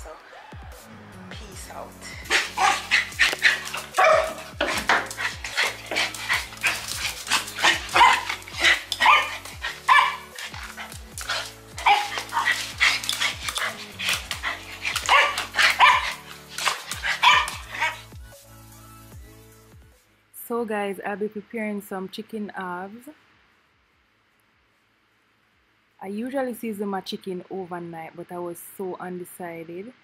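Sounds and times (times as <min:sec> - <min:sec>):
background music: 0:00.0 - 0:21.3
small dogs barking: 0:02.2 - 0:18.1.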